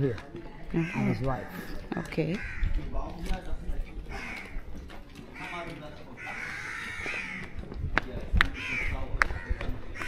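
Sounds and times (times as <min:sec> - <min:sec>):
crows cawing: 0:00.7 - 0:03.0, 0:04.1 - 0:07.6, 0:08.6 - 0:10.0.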